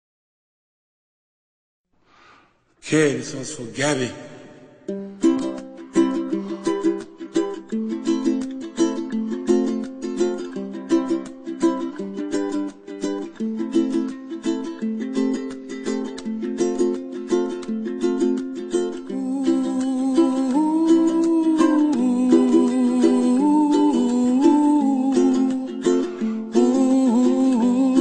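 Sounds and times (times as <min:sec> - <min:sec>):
ukulele strumming chords: 0:04.5 - 0:28.0.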